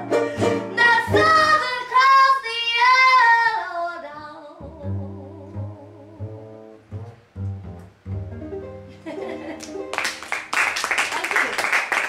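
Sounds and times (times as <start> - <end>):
plucked upright bass: 0.0 - 1.8, 4.6 - 10.2
acoustic string band: 0.0 - 2.3, 4.6 - 10.6.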